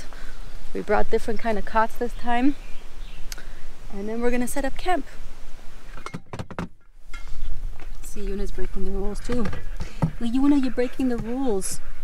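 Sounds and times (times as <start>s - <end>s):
outdoor background hiss: 0.0s - 12.0s
knocks and clunks of gear handling: 6.0s - 6.8s.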